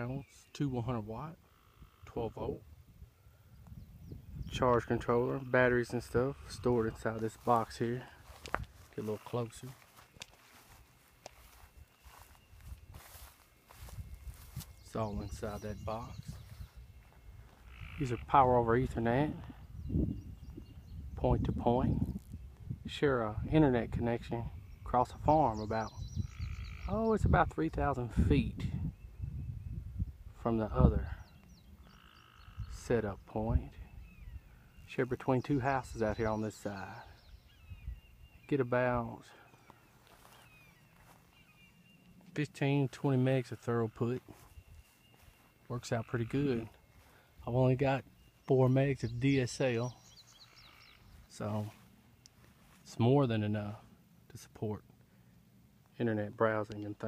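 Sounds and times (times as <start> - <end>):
faint bird chirps: 0.0 - 57.0
footsteps through grass: 5.9 - 18.2, 39.4 - 53.1.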